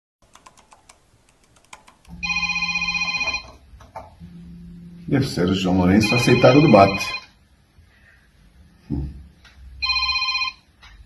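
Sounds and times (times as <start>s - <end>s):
keyboard keys clicking: 0.2s - 2.1s
electronic phone ringtone: 2.2s - 3.6s, 5.9s - 7.4s, 9.8s - 10.7s.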